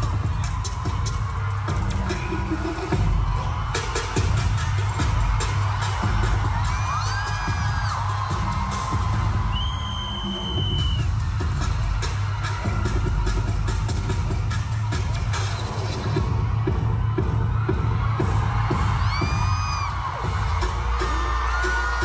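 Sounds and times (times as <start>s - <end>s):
crowd cheering and screaming: 0.0s - 22.0s
live pop music with bass beat: 0.0s - 22.0s.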